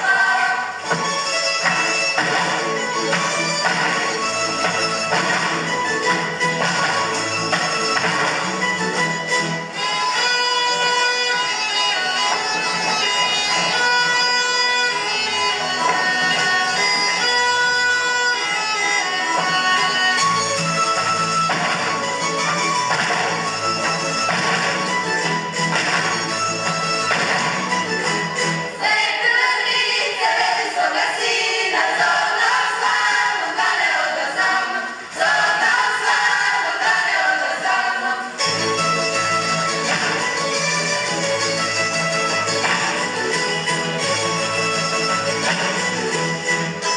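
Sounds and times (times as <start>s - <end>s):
women singing in harmony: 0.0s - 0.8s, 28.7s - 38.4s
folk dance music: 0.0s - 46.9s.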